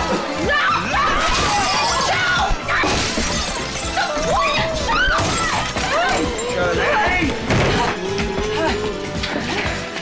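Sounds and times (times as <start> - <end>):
music playing: 0.0 - 10.0
glass smashing: 2.7 - 8.0.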